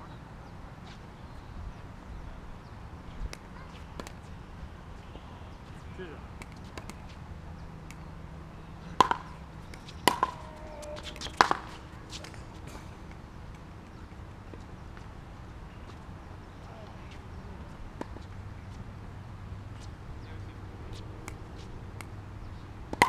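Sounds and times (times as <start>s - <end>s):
ball hits with ringing: 9.0s - 11.8s.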